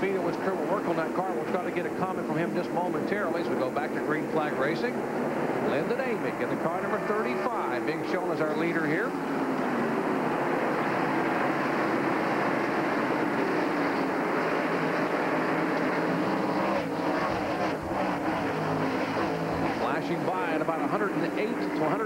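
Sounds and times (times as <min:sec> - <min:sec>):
race cars engines droning: 0:00.0 - 0:22.0.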